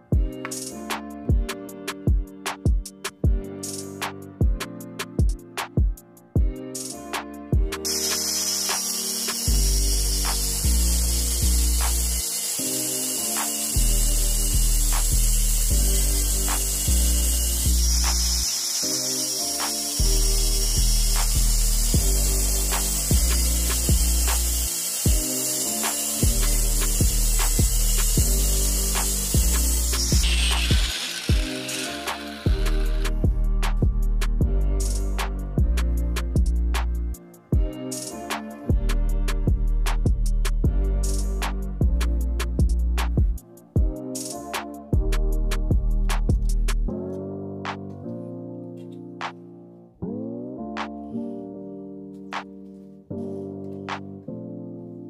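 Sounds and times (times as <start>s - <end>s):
background music with beat: 0.0s - 48.1s, 48.8s - 49.6s, 50.7s - 51.2s, 52.1s - 53.0s, 53.6s - 54.3s
grinder disc winding down: 7.8s - 33.4s
angle grinder cutting steel: 7.8s - 33.8s.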